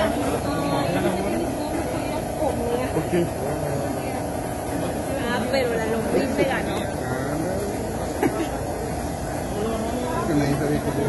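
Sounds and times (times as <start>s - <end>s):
mechanical hum: 0.0s - 11.0s.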